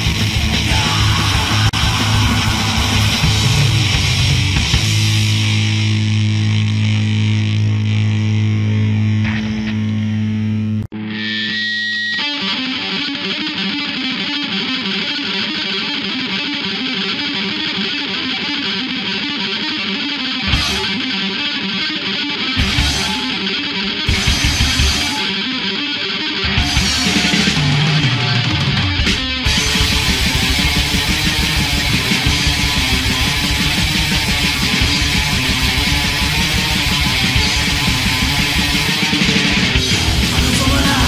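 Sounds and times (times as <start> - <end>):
distorted electric guitar: 0.0 - 41.0
hardcore punk band playing: 0.0 - 41.0.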